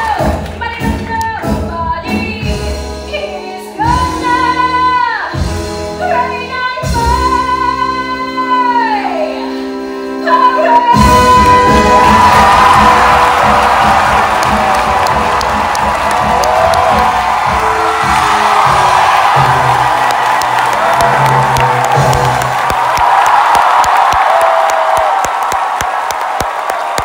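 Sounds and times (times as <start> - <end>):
orchestra closing chords: 11.0 - 23.0
audience cheering and whooping: 11.1 - 27.0
sharp clapping: 13.1 - 27.0.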